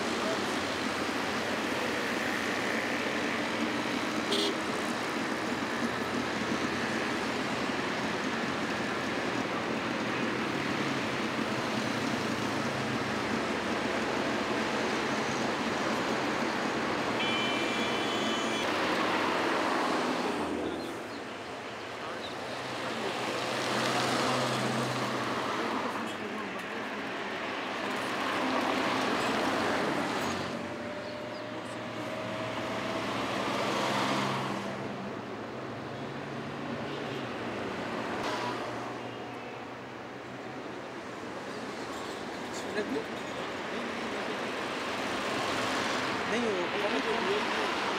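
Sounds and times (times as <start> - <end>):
road traffic: 0.0 - 47.9
vehicles passing: 0.0 - 47.9.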